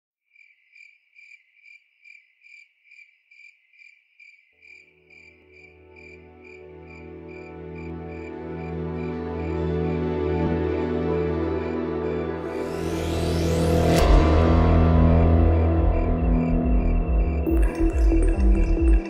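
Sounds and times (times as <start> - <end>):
high cricket-like chirp: 0.3 - 10.0.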